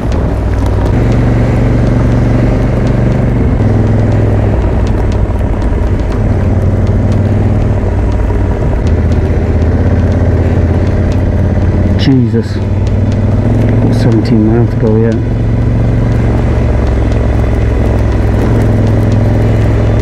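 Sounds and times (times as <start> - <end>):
motorcycle engine running: 0.0 - 20.0
wind and road noise: 0.0 - 20.0.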